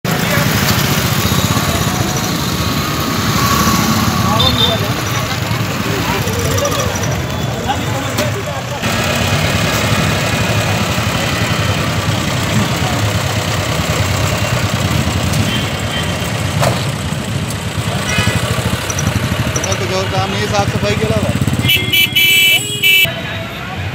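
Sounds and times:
street noise: 0.0 - 23.9
crowd voices: 0.1 - 21.6, 22.6 - 23.9
motorcycle engines running: 0.1 - 23.1.

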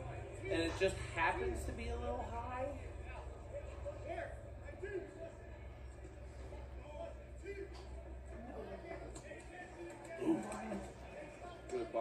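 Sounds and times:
faint voices from television: 0.0 - 12.0.

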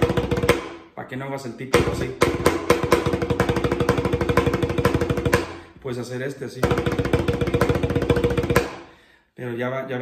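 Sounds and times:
snare drum played with sticks: 0.0 - 0.8, 1.7 - 5.6, 6.6 - 8.9.

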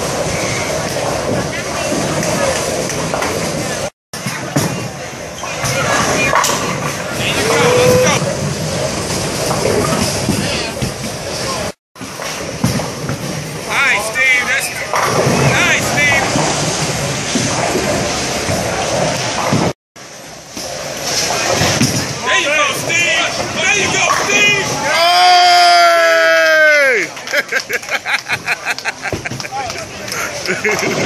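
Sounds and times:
bowling pins crashing: 0.0 - 14.1, 14.8 - 19.8, 20.5 - 24.8
bowling balls rolling: 0.0 - 25.8, 27.1 - 31.0.

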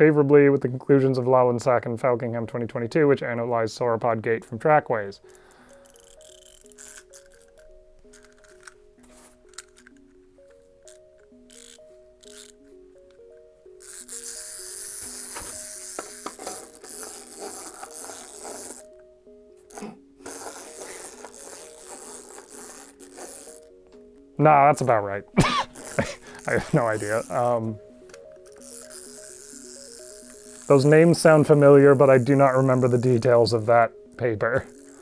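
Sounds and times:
soft background music: 0.0 - 35.0
wind-up toy clicking: 5.3 - 8.8, 9.5 - 10.0, 10.8 - 12.6, 13.8 - 18.9, 19.7 - 23.7, 25.7 - 31.2, 34.6 - 35.0
toy scraping and rattling on cardboard: 5.8 - 10.1, 10.9 - 12.6, 13.8 - 18.9, 19.7 - 23.7, 25.7 - 27.7, 28.4 - 33.5, 34.6 - 35.0.

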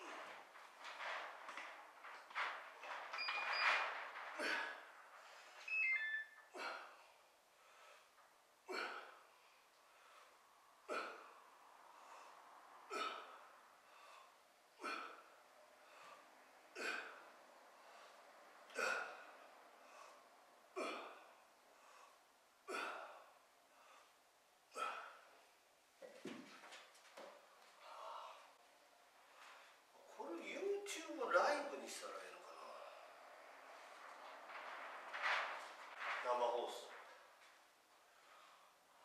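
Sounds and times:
man breathing hard: 6.5 - 24.2, 27.8 - 28.6.

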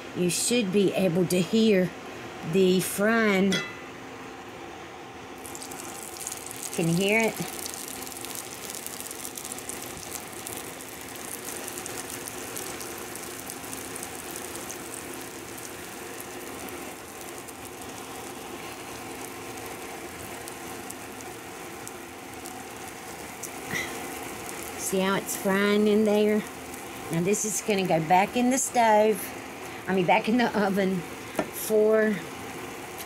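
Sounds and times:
faint steady hum: 0.0 - 33.0
batter sizzling in hot oil: 5.4 - 33.0.

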